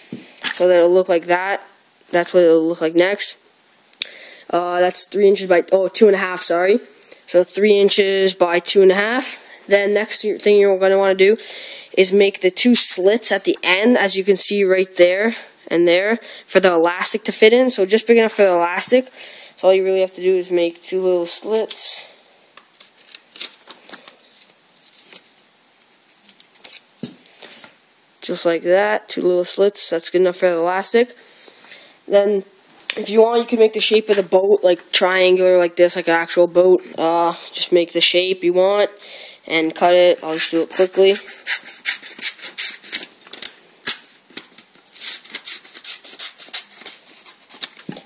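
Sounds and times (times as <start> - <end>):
scissors cutting paper: 40.3 - 48.0
scissors snipping paper: 44.9 - 48.0.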